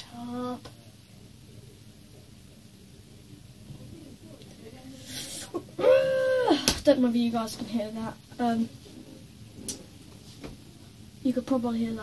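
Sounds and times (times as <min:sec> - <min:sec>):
high whining cry: 0:05.8 - 0:06.6.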